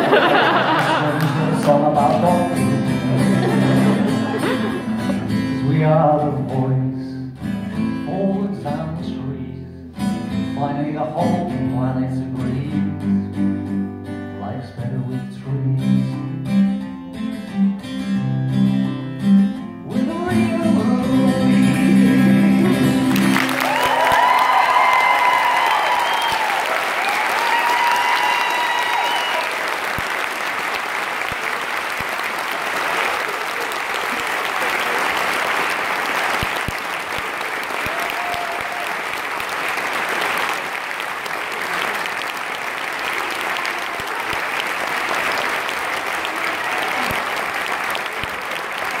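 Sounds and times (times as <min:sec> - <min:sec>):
audience applauding: 0:00.0 - 0:05.4, 0:22.2 - 0:49.0.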